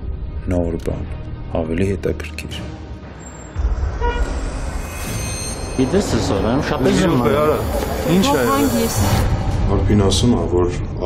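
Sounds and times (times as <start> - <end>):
car horn toot: 3.9 - 4.5.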